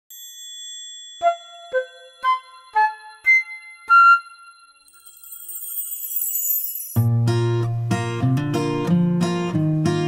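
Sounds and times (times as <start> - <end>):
bell-like chimes jingle: 0.1 - 7.2.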